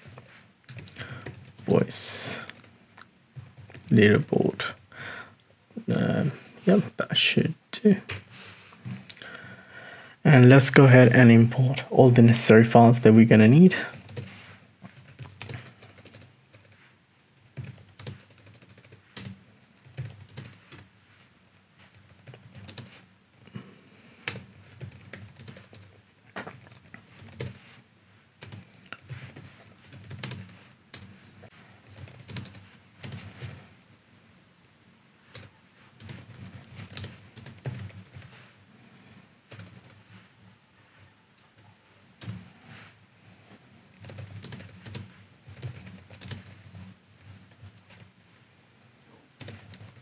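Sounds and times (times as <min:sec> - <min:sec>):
keyboard typing: 0:00.0 - 0:02.7, 0:03.4 - 0:04.8, 0:13.9 - 0:14.3, 0:14.9 - 0:16.8, 0:17.4 - 0:20.9, 0:21.9 - 0:23.0, 0:24.2 - 0:27.8, 0:28.4 - 0:31.1, 0:31.8 - 0:33.6, 0:35.3 - 0:38.3, 0:39.5 - 0:40.0, 0:43.9 - 0:48.3, 0:49.3 - 0:50.0.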